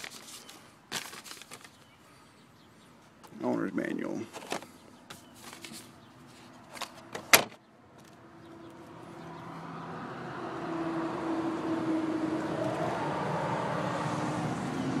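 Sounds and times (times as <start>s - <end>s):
vehicle low hum: 7.8s - 15.0s.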